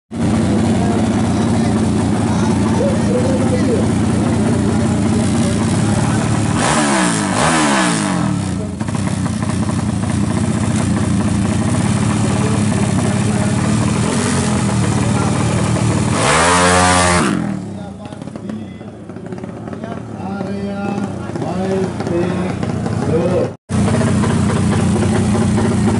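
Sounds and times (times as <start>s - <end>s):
motorcycle engine idling and revving: 0.1s - 25.9s.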